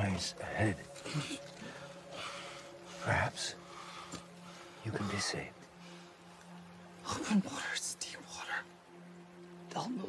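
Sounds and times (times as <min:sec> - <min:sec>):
low steady drone: 0:00.0 - 0:10.0
soft breathing: 0:01.0 - 0:06.9.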